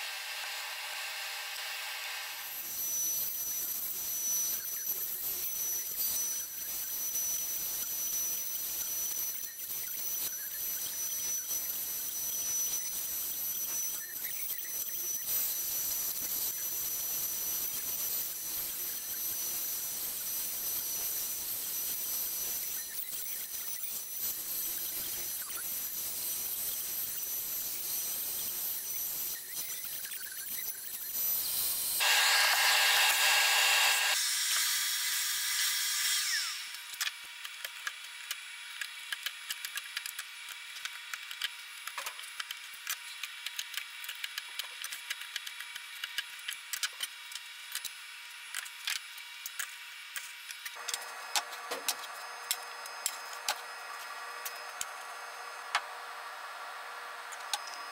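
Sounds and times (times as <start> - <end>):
cnc router cutting with high whine: 0.0 - 39.5, 48.8 - 57.9.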